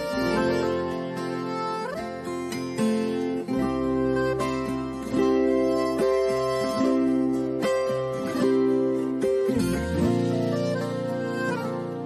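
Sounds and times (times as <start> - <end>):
strummed acoustic guitar: 0.0 - 12.0
steady bass: 8.2 - 12.0.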